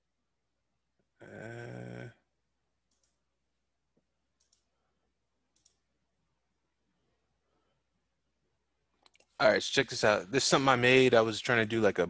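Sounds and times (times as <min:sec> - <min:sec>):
computer mouse clicks: 0:02.9 - 0:03.2, 0:04.4 - 0:04.7, 0:05.5 - 0:05.8, 0:09.0 - 0:09.4.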